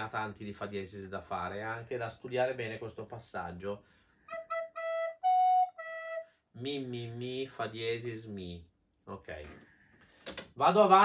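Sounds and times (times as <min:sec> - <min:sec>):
recorder playing notes: 0:04.3 - 0:06.4.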